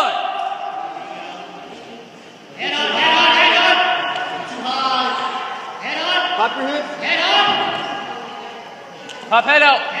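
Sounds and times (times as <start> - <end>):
man shouting in echoing hall: 0.0 - 0.9, 2.6 - 8.0
room murmur: 0.0 - 10.0.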